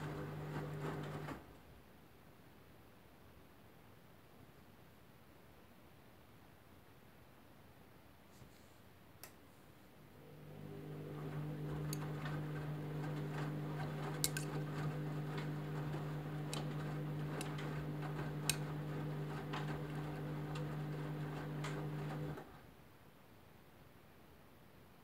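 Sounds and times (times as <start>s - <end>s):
washing machine motor hum: 0.0s - 1.5s, 10.1s - 22.6s.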